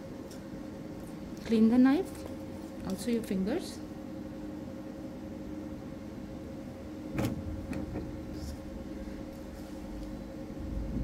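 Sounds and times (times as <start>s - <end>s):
low background hum: 0.0s - 11.0s
woman speaking: 1.4s - 3.9s.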